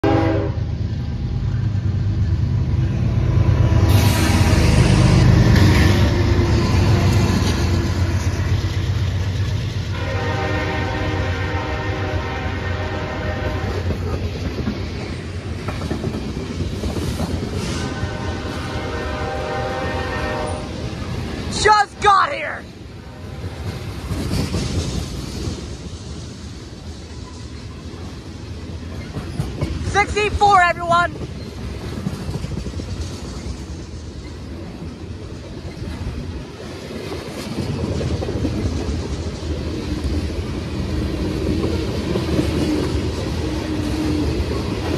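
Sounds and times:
train horn: 0.0s - 0.7s, 9.9s - 14.0s, 17.6s - 20.8s
diesel locomotive engines: 0.0s - 44.9s
train wheels clacking over rails: 3.9s - 10.8s, 13.3s - 19.5s, 23.4s - 44.9s.

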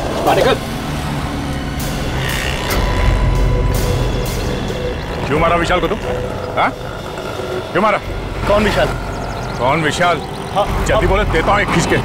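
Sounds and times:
steady low rumble: 1.7s - 11.7s.

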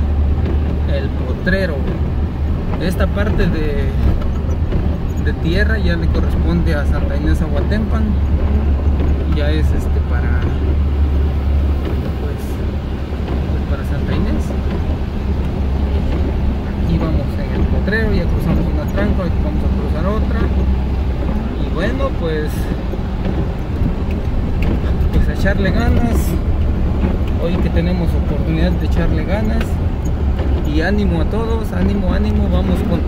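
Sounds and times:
rain on windshield: 0.0s - 33.0s
road noise: 0.0s - 33.0s
vehicle engine running: 0.0s - 33.0s.

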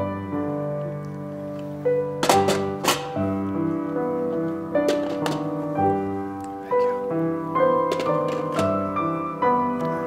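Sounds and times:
gentle piano music: 0.0s - 10.0s.

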